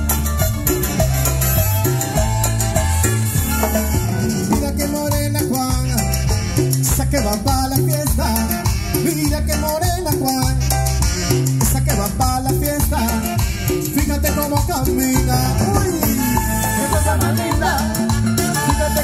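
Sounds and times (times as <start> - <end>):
latin dance band playing: 0.0 - 19.0
repeating bass pattern: 0.0 - 19.0.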